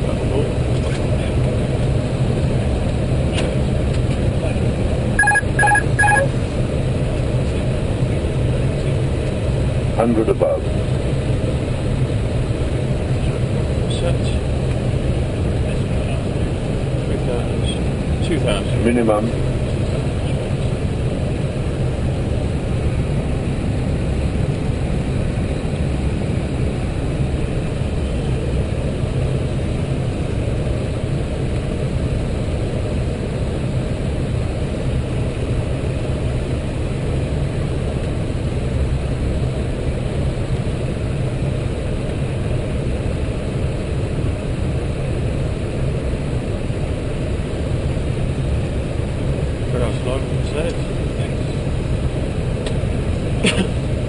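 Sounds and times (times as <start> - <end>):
airflow and engine rumble in cockpit: 0.0 - 54.0.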